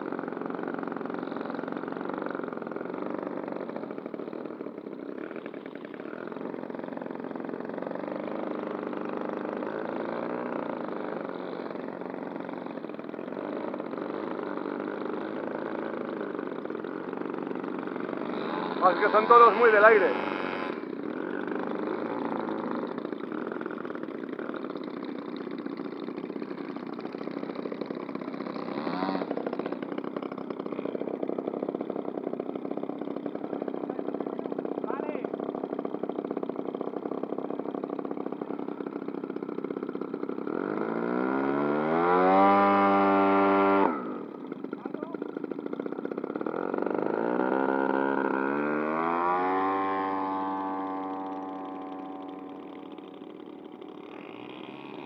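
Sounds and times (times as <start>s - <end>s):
model aircraft engines running: 0.0s - 55.0s
model engine revving high: 0.0s - 55.0s.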